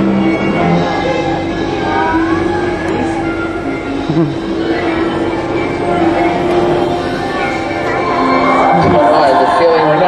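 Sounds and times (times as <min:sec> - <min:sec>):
sustained tones: 0:00.0 - 0:10.0.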